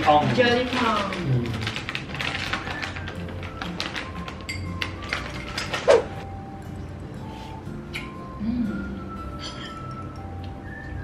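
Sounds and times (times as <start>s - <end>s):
music with light tapping beat: 0.8s - 11.0s.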